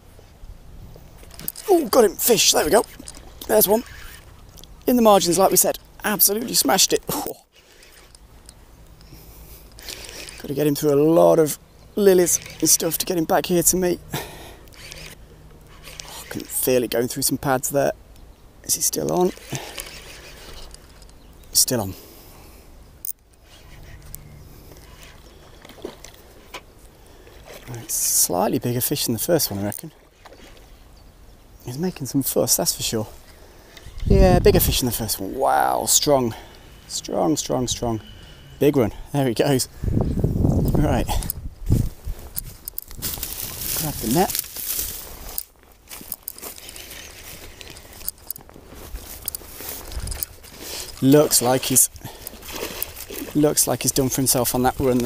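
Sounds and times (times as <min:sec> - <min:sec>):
footsteps through dry reeds: 0:41.6 - 0:55.0.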